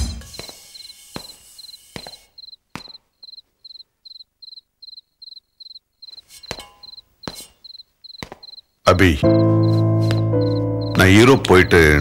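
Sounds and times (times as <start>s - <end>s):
cricket chirping: 0.3s - 12.0s
sharp knocks: 6.4s - 7.6s, 8.2s - 8.6s.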